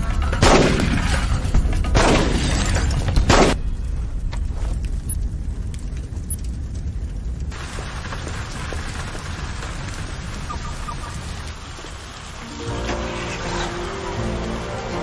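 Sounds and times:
steady low rumble: 0.0s - 12.4s
heavy rain on vehicles and tarmac: 5.2s - 15.0s.

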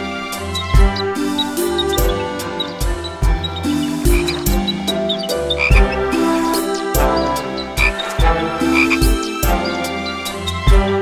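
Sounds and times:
light instrumental music: 0.0s - 11.0s
low thumps: 0.0s - 11.0s.

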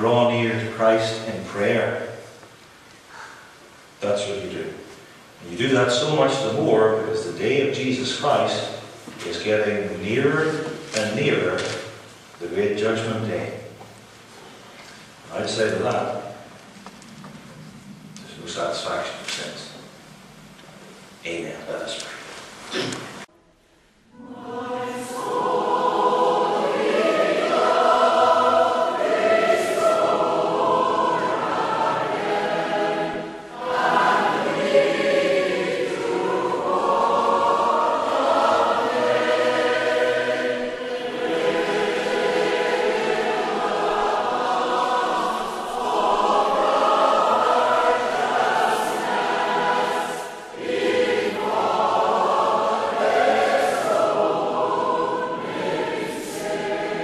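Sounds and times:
choir singing a hymn: 0.0s - 2.3s, 3.2s - 11.7s, 24.1s - 57.0s.

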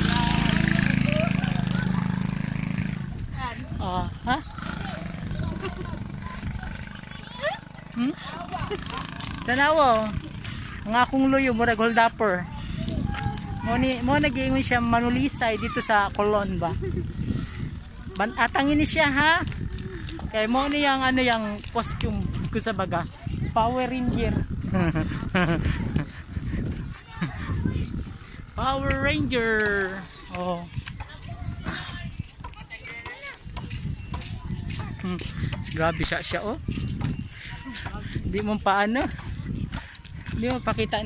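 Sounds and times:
wind rumbling on microphone: 0.0s - 41.0s.

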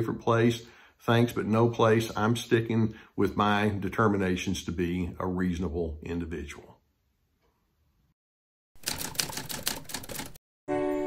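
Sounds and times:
rapid typewriter-like clicks: 8.8s - 10.4s.

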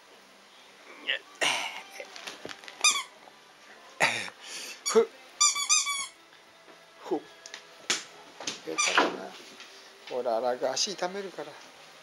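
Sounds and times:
squeaky toy squeaks: 2.8s - 3.1s, 4.8s - 6.2s, 8.8s - 9.0s.

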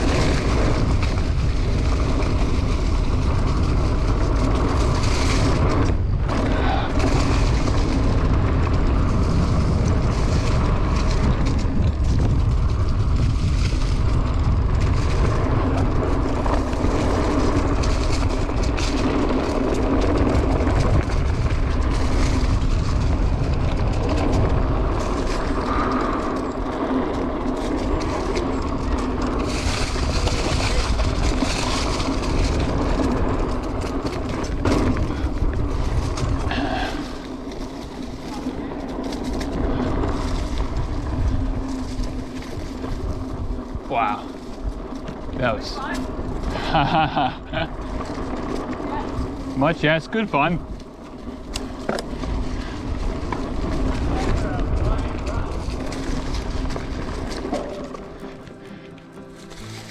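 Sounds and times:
bike rattling over bumps: 0.0s - 59.9s
tyres rolling over dirt and leaves: 0.0s - 59.9s
wind buffeting microphone: 0.0s - 59.9s.

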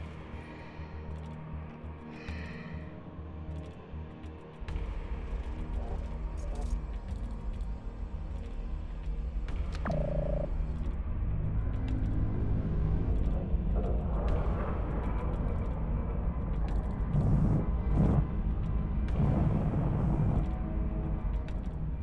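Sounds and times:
deep rumble: 12.9s - 21.5s.

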